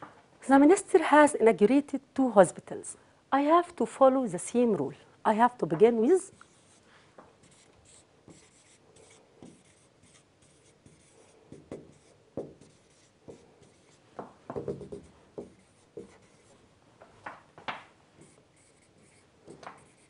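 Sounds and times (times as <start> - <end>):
marker writing on whiteboard: 6.3 - 6.8, 7.4 - 16.6, 18.2 - 20.0.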